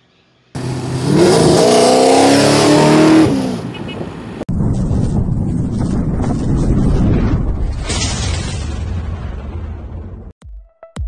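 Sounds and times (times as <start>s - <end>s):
car engine revving: 0.6s - 3.7s.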